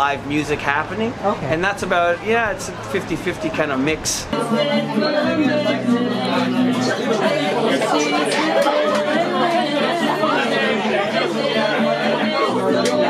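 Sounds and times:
acoustic guitar music: 0.0s - 13.0s
crowd chatter: 0.0s - 13.0s.

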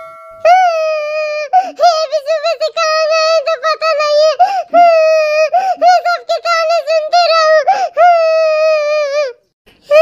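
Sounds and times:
high-pitched cartoon voice crying: 0.4s - 10.0s.

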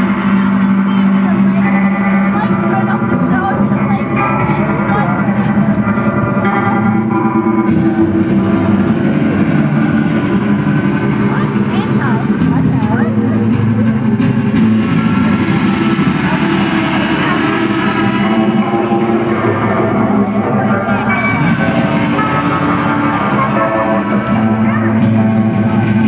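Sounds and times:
electric guitars with effects: 0.0s - 26.0s.

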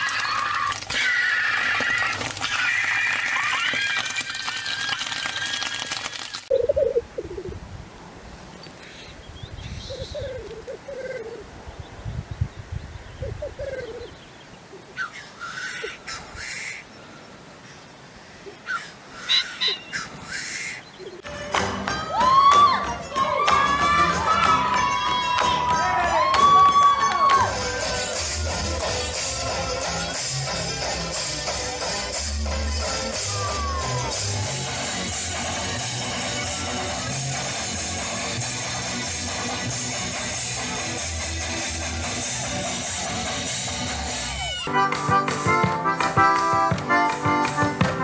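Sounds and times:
grouse hissing calls: 0.0s - 7.6s, 9.7s - 11.5s, 13.2s - 21.2s
grouse bubbling coos: 1.6s - 7.6s, 9.9s - 11.5s, 13.2s - 14.1s
music with several instruments: 21.2s - 48.0s.

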